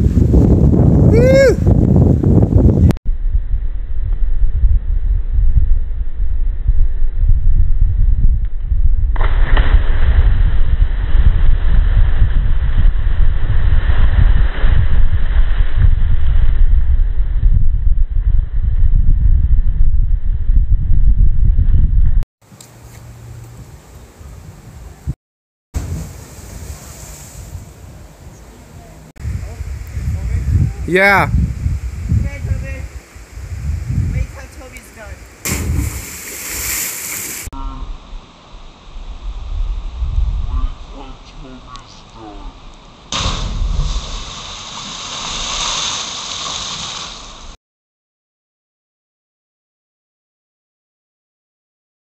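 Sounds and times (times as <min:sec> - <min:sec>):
wind buffeting microphone: 0:00.0 - 0:22.2, 0:25.8 - 0:36.7, 0:37.8 - 0:44.5
splash into water: 0:09.2 - 0:11.7, 0:35.4 - 0:37.5, 0:43.1 - 0:47.6
hissing spray: 0:43.1 - 0:47.6.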